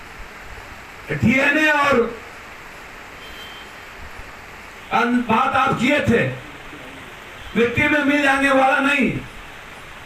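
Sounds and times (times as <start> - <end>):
steady background noise: 0.0 - 10.0
faint high-pitched beep: 3.2 - 3.7.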